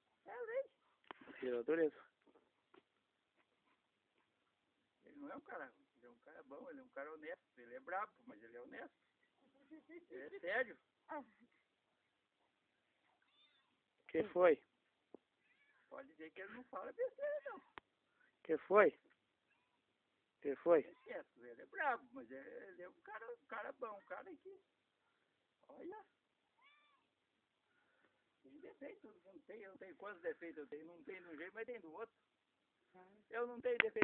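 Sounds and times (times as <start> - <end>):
cat meowing: 13.2 - 13.8, 26.6 - 27.1.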